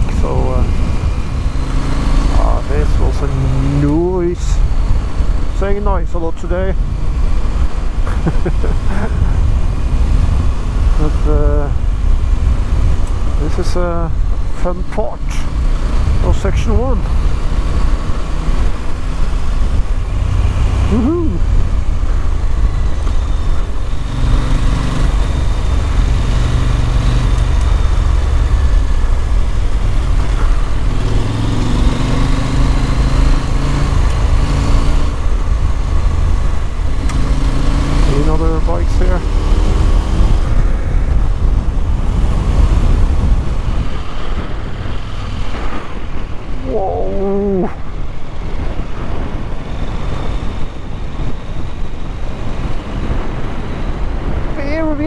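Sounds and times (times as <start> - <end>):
wind noise on microphone: 0.0 - 55.0
motorcycle engine running: 14.1 - 47.2.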